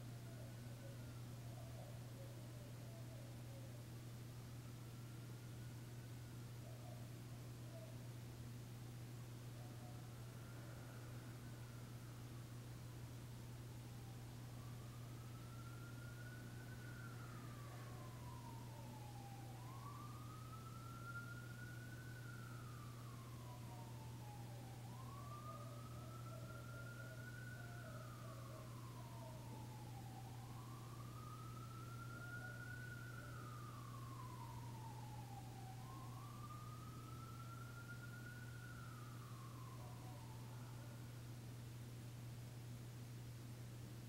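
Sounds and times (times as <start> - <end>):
faint siren wailing: 0.0 - 41.8
steady low hum: 0.0 - 44.0.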